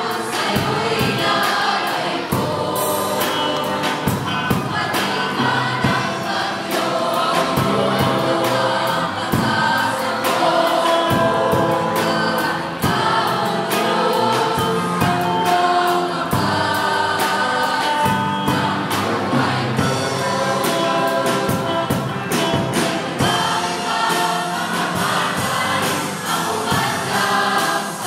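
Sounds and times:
mixed choir singing gospel: 0:00.0 - 0:28.0.

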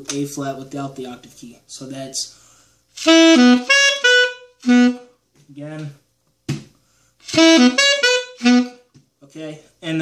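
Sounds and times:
alto saxophone riff: 0:03.0 - 0:05.2, 0:07.2 - 0:08.9.

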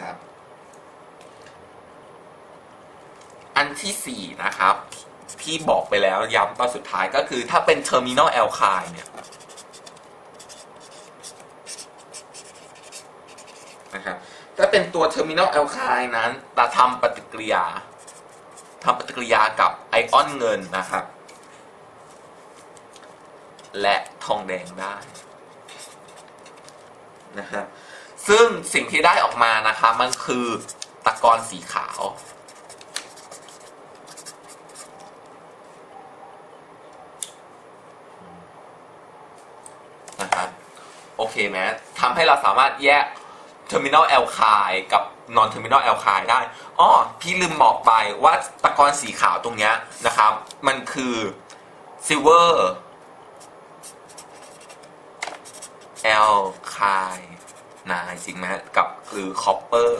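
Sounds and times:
marker pen scratching on paper: 0:05.2 - 0:05.9, 0:09.0 - 0:13.9, 0:17.9 - 0:19.0, 0:24.6 - 0:26.8, 0:30.4 - 0:35.1, 0:53.4 - 0:58.4.

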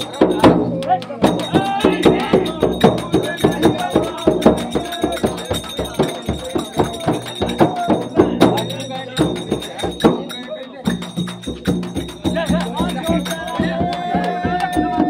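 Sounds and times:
frame drum beaten with stick: 0:00.0 - 0:15.0
men singing: 0:00.0 - 0:15.0.

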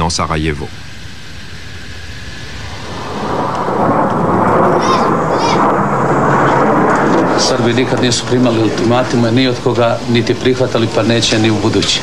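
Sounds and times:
jet aircraft roar: 0:00.0 - 0:12.0.

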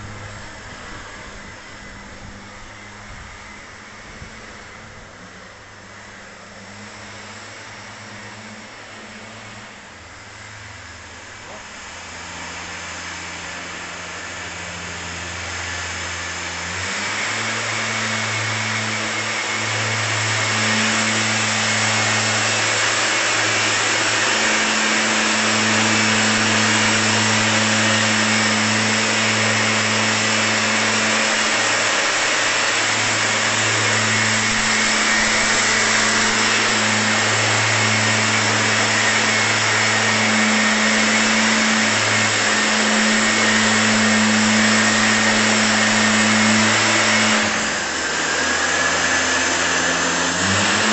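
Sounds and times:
blower engine running: 0:00.0 - 0:50.9
rush of blown air: 0:00.0 - 0:50.9.

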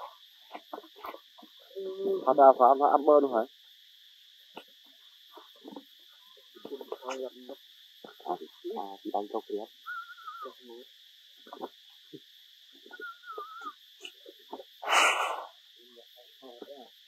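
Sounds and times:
low voices: 0:00.0 - 0:03.5, 0:06.6 - 0:10.8, 0:11.4 - 0:12.2
forest insects droning: 0:00.0 - 0:17.0.

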